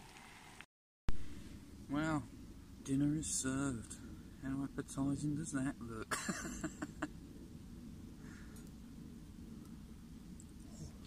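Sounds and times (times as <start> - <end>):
man laughing breathily: 6.1 - 7.1.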